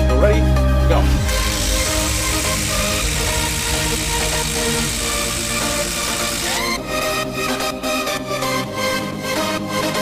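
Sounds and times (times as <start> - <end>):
electronic music: 0.9 - 9.1.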